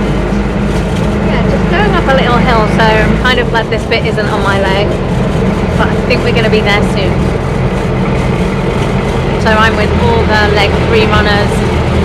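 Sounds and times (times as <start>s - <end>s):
bus engine running: 0.0s - 12.0s
road noise: 0.0s - 12.0s.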